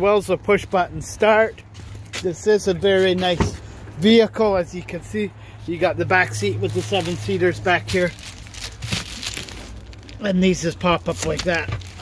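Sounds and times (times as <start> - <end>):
rustling and crinkling handling noise: 1.4 - 4.2, 5.7 - 12.0.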